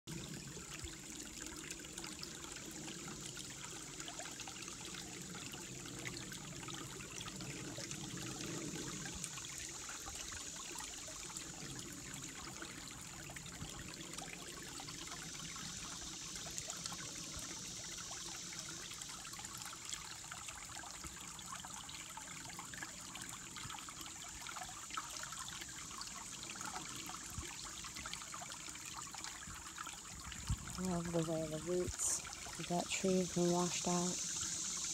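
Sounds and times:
creek trickling over rocks: 0.1 - 34.9.

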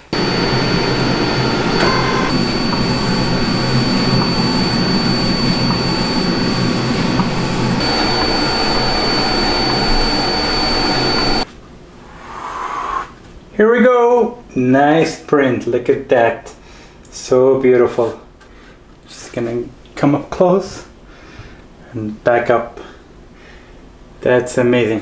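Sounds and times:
inkjet printer whirring: 0.0 - 11.4.

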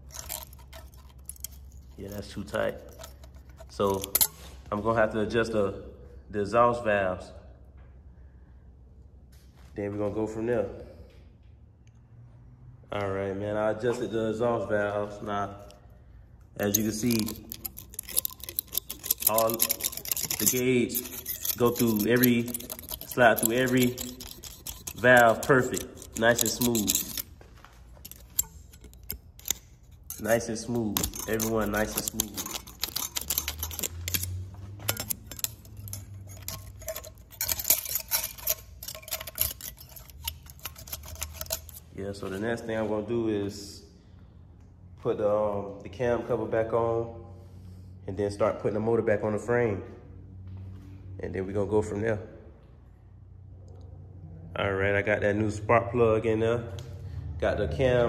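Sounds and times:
metallic clicks of steel blades: 0.0 - 4.5, 16.6 - 27.3, 28.0 - 41.8.

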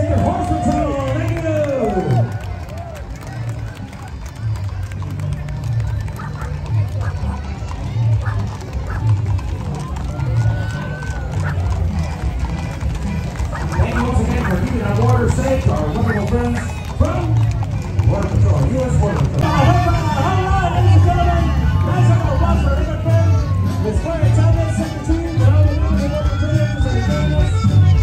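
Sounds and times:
crowd voices: 0.0 - 28.0
horse hooves on pavement: 0.0 - 28.0.

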